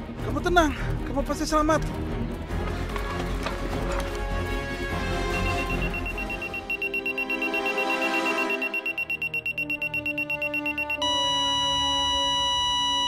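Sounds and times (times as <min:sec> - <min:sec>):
background music: 0:00.0 - 0:13.0
electronic countdown beeping: 0:05.2 - 0:13.0.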